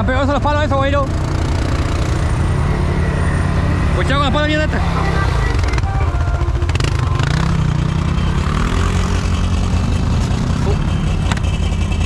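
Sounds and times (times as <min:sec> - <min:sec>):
atv engines running: 0:00.0 - 0:12.0.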